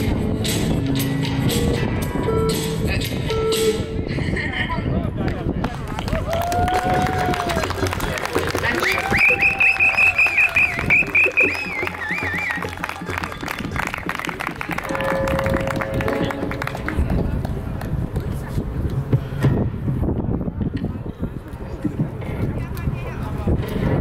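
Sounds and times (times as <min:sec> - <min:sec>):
outdoor noise: 0:00.0 - 0:24.0.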